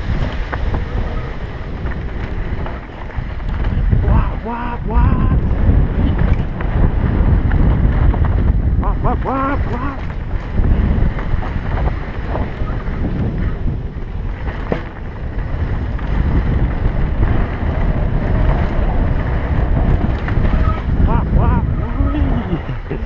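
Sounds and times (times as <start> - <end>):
mountain bike rumbling and rattling: 0.0 - 23.0
wind rushing over microphone: 0.0 - 23.0.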